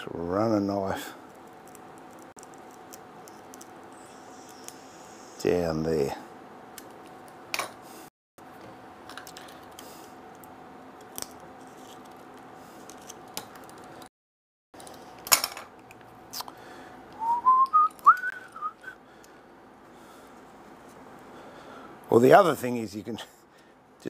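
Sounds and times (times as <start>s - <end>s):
steady background hum: 0.0s - 14.1s, 14.8s - 24.0s
person whistling rising notes: 17.2s - 19.0s.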